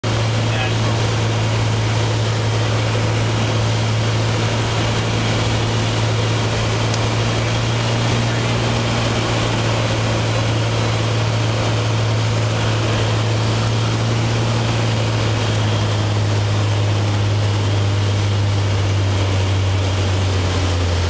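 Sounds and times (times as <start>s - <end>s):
light aircraft engine droning: 0.0s - 21.0s.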